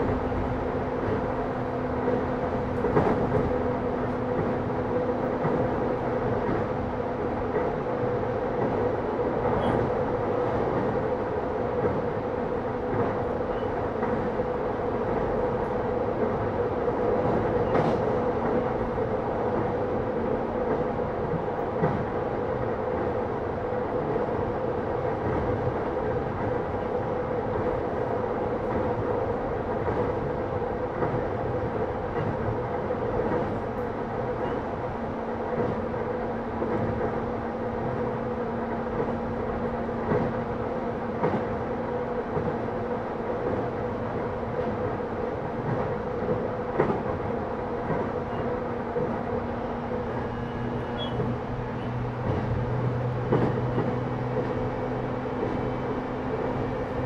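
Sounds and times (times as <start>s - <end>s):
train rolling noise with hum: 0.0s - 57.0s.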